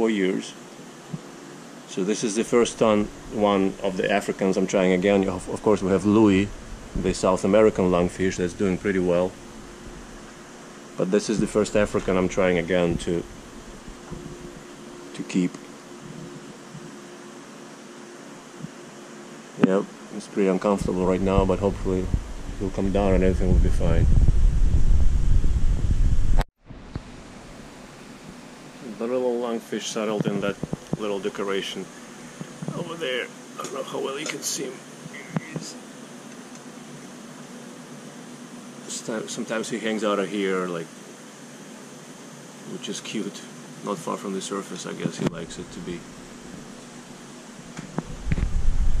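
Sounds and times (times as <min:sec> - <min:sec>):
equipment humming: 0:00.0 - 0:49.0
steady hiss: 0:00.0 - 0:49.0
loud low rumbling: 0:05.0 - 0:10.3, 0:20.8 - 0:26.4.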